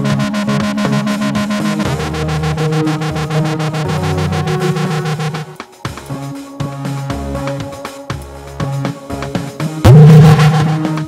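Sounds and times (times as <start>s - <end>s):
synth bass line: 0.0s - 5.6s, 9.8s - 11.0s
held synth notes: 0.0s - 8.7s, 9.8s - 11.0s
fast drum hits: 9.9s - 11.0s.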